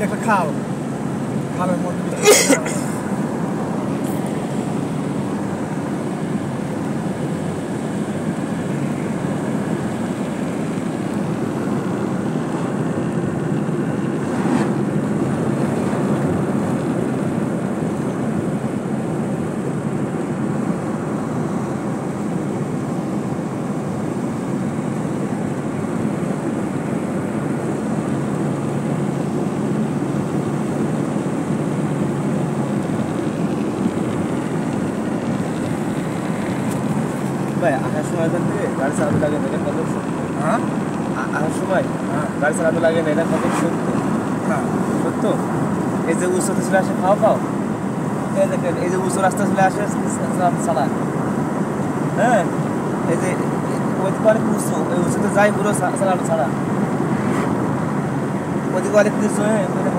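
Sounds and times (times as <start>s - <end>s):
car engine and tyres rumbling: 0.0s - 59.9s.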